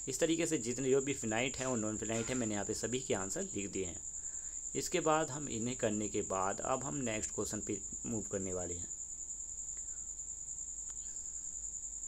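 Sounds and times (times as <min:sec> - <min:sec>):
faint low hum: 0:00.0 - 0:12.0
faint click: 0:09.7 - 0:10.0, 0:10.8 - 0:11.2.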